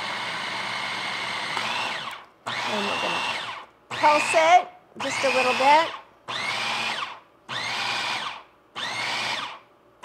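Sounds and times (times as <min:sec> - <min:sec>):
food processor motor whining: 0:00.0 - 0:09.7.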